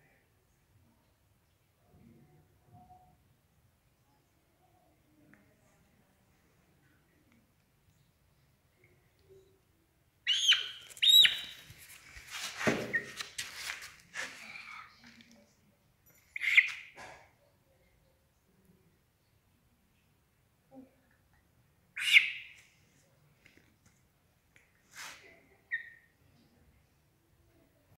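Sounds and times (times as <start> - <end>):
hen squawking: 10.3 - 11.5.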